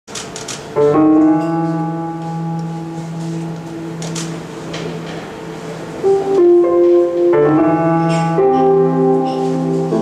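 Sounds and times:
piano chord ringing: 0:00.7 - 0:10.0.

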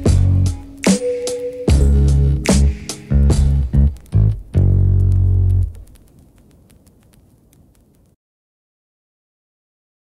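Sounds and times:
faint crackling hiss: 0:00.0 - 0:08.2
low bass note of a beat: 0:01.7 - 0:05.8.

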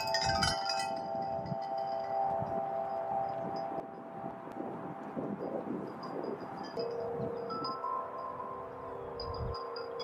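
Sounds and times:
chimes ringing: 0:00.0 - 0:10.0.

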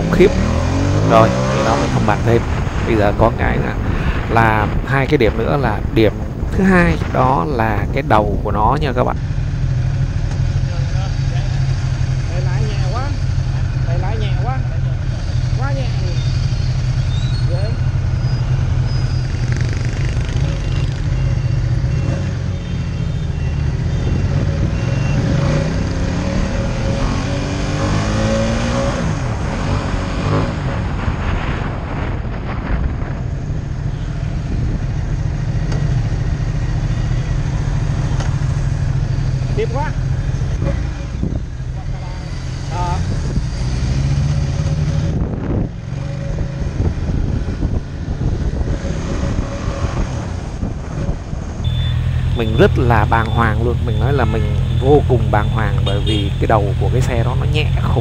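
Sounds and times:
motorcycle engine revving: 0:00.0 - 0:04.3, 0:09.2 - 0:32.0, 0:33.8 - 0:58.0
road and wind noise: 0:00.0 - 0:58.0.

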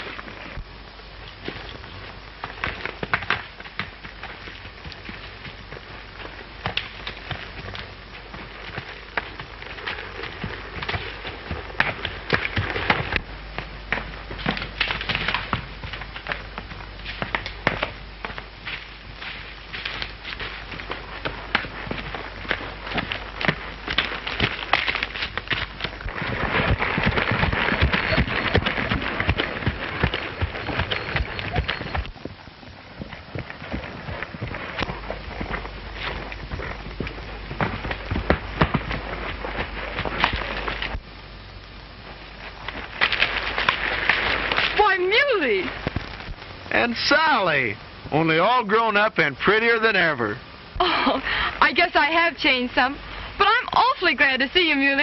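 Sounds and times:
hooves crunching through dry leaves: 0:00.0 - 0:41.2, 0:41.9 - 0:47.4
galloping hoofbeats: 0:00.0 - 0:55.0
low film soundtrack hum: 0:00.0 - 0:55.0.

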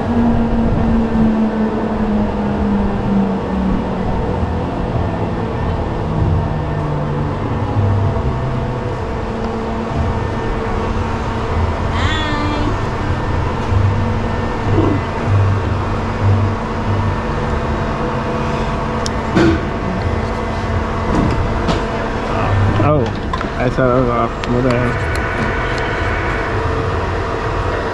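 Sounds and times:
pulsing low rumble: 0:00.0 - 0:27.9
ride machine droning: 0:00.0 - 0:27.9.

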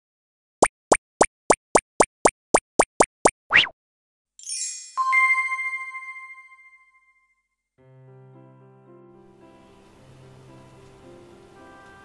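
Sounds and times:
cartoon rising plops: 0:00.6 - 0:03.8.

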